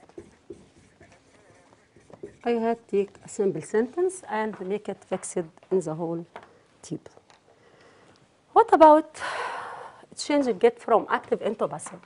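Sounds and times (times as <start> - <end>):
marker tapping and scratching on board: 0.0 - 5.7.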